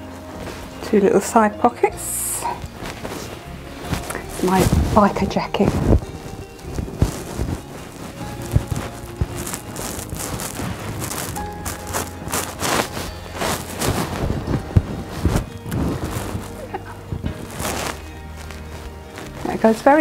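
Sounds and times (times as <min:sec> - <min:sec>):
background music: 0:00.0 - 0:20.0
high-heeled footsteps: 0:00.0 - 0:20.0.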